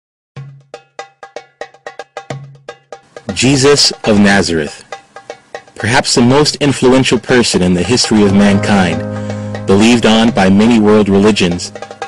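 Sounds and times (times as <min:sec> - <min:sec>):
bell-like percussion hits: 0:08.1 - 0:12.0.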